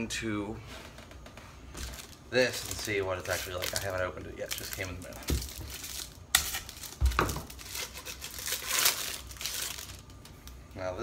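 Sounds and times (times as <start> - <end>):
packaging crinkling: 1.8 - 10.6.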